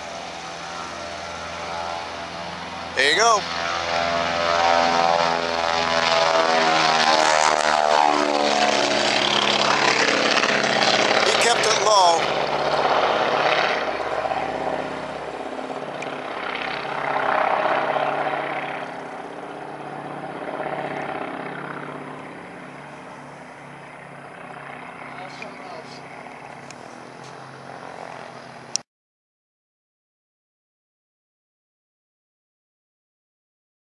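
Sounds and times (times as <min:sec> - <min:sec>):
propeller airplane engine drone: 0:00.0 - 0:28.8.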